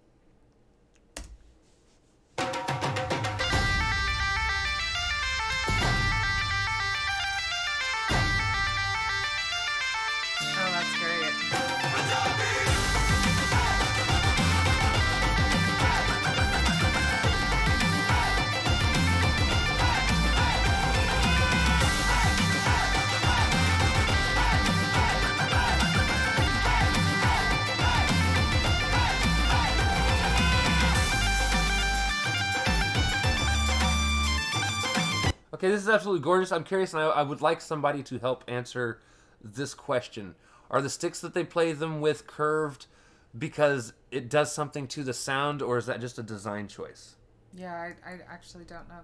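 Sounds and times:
dhol drumming: 2.4s - 9.3s, 11.6s - 33.9s
bagpipe melody with drone: 3.4s - 35.3s.

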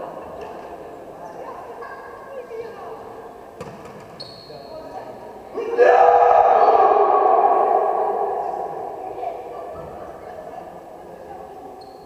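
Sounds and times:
players shouting in echoing hall: 5.5s - 10.3s.

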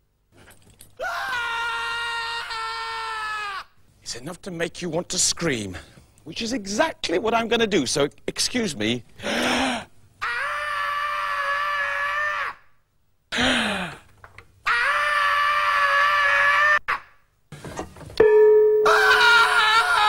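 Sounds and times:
man screaming: 10.2s - 12.6s, 14.7s - 17.0s, 18.9s - 20.0s.

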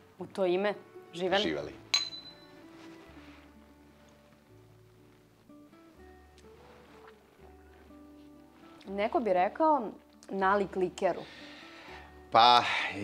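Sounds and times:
soft background music: 0.0s - 13.0s
wine glasses clinking: 1.3s - 2.6s.

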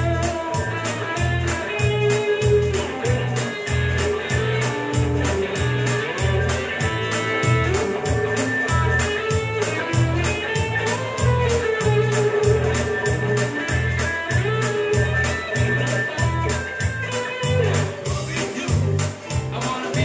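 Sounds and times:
electric guitar: 0.0s - 20.0s
live rock band playing: 0.0s - 20.0s.

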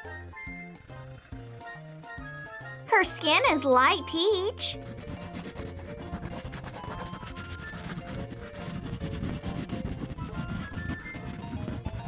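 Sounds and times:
crayon scratching on paper: 4.8s - 12.0s.

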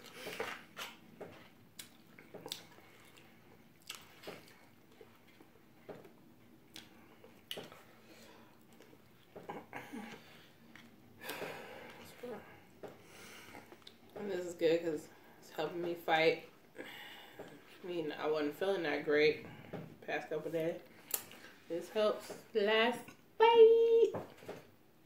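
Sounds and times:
soft chewing: 0.0s - 14.3s.

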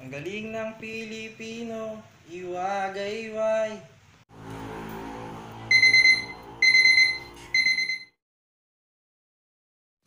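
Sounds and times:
alarm clock beeping: 5.7s - 8.2s.

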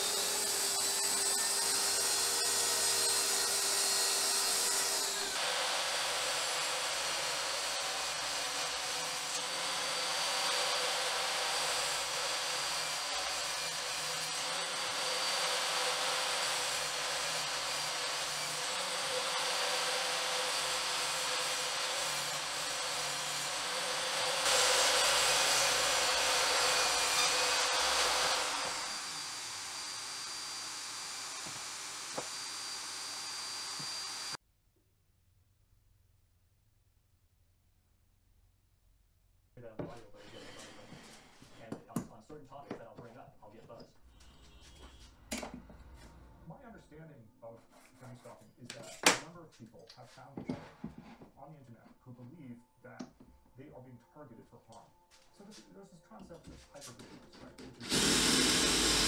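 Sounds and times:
saw cutting wood: 0.0s - 34.4s, 39.8s - 46.3s, 57.5s - 59.0s
track saw whining: 0.0s - 34.4s, 57.8s - 59.0s.

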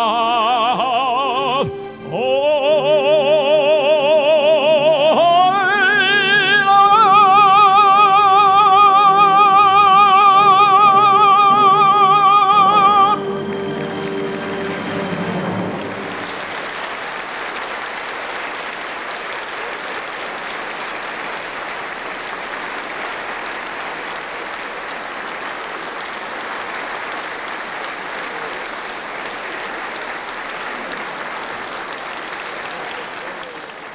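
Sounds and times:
audience applauding: 2.5s - 33.9s.

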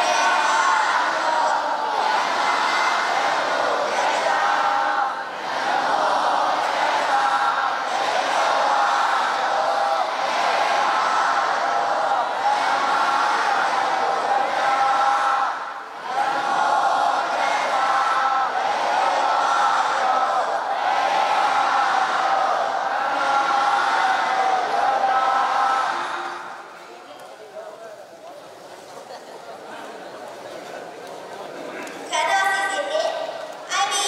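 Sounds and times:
voices chanting over a pa system: 0.0s - 26.8s.

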